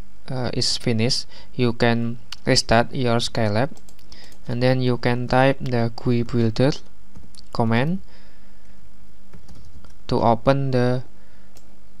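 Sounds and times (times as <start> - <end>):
steady low hum: 0.0 - 12.0
computer keyboard keystrokes: 3.8 - 4.5, 9.3 - 10.0.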